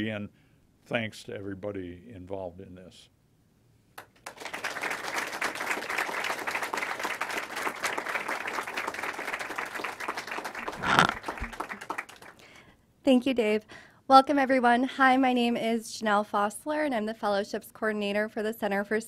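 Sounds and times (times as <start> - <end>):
audience applauding: 4.0 - 12.6.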